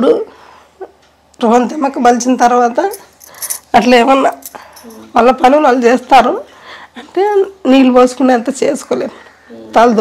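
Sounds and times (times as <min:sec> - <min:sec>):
woman speaking: 0:01.4 - 0:10.0.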